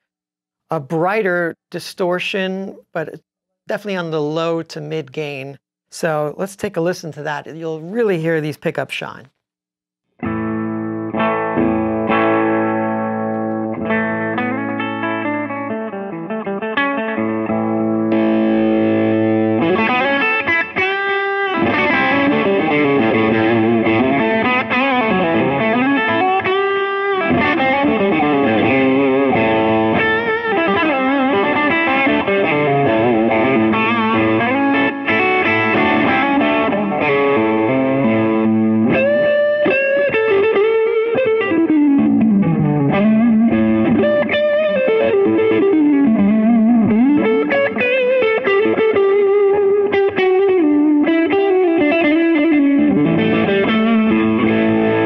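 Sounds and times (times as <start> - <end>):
overdriven electric guitar: 10.1 - 55.0.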